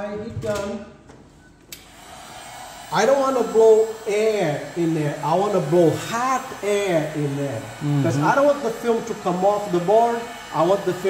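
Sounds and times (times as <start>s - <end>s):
heat gun fan blowing: 1.7s - 11.0s.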